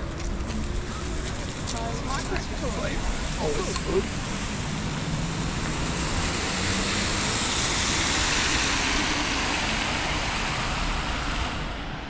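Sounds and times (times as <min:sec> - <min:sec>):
tyres hissing on wet road: 0:01.1 - 0:12.0.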